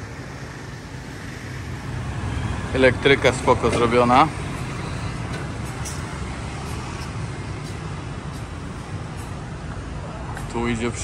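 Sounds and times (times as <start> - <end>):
city street traffic hum: 0.0 - 11.0.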